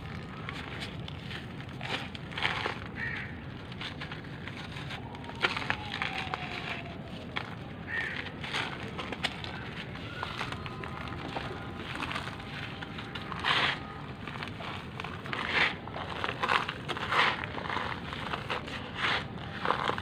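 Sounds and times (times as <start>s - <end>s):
charcoal crunching by hand: 0.0s - 20.0s
granules falling on paper: 0.0s - 20.0s.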